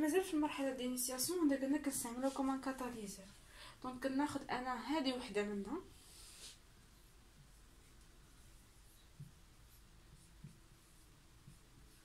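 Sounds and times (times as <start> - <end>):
marker pen writing on whiteboard: 6.2 - 12.0.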